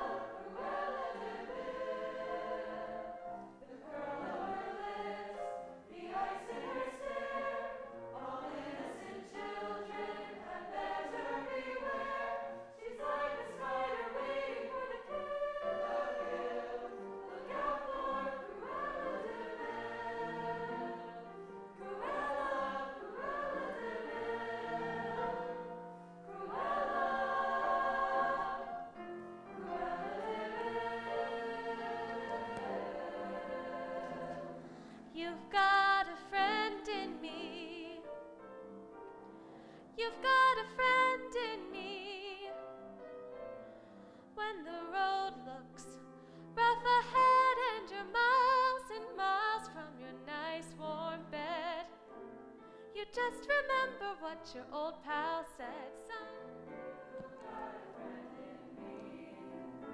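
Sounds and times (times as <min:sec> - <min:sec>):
choir singing in harmony: 0:00.0 - 0:59.9.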